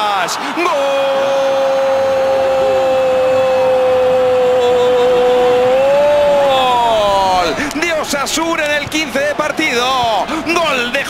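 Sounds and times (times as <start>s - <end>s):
commentator shouting: 0.0s - 11.0s.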